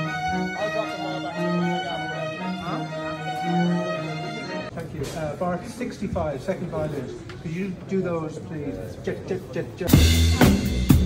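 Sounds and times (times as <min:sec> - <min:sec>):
string section playing sustained chords: 0:00.0 - 0:04.8.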